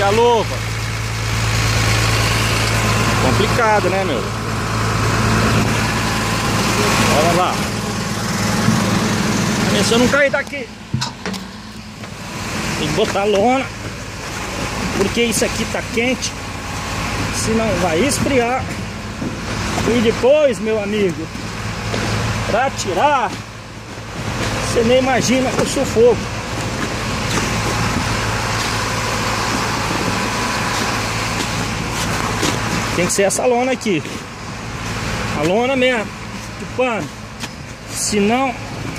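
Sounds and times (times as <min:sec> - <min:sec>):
street noise: 0:00.0 - 0:38.9
truck engine idling: 0:00.0 - 0:38.9.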